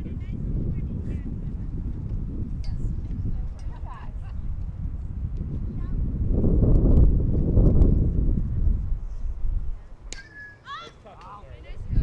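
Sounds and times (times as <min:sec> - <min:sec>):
wind rumbling on microphone: 0:00.0 - 0:10.1, 0:11.4 - 0:12.0.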